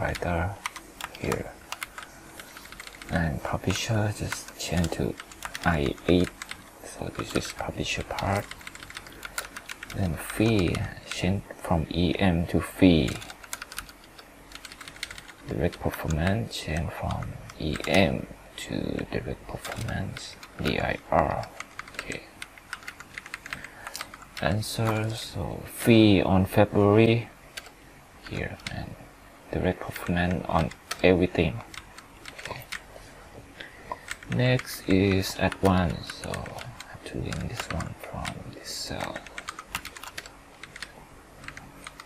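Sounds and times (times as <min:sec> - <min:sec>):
computer keyboard typing: 0:00.0 - 0:11.3, 0:12.9 - 0:18.2, 0:18.9 - 0:25.2, 0:27.6 - 0:28.8, 0:29.9 - 0:32.9, 0:33.9 - 0:42.0.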